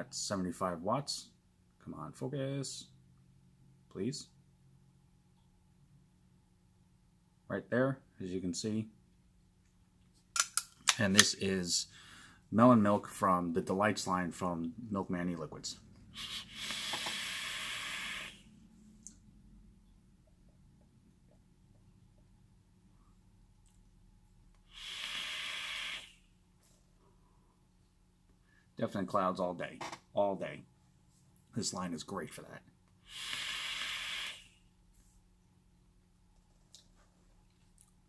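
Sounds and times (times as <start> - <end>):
vaporizer hissing: 16.1 - 18.6, 24.6 - 26.4, 33.0 - 34.8.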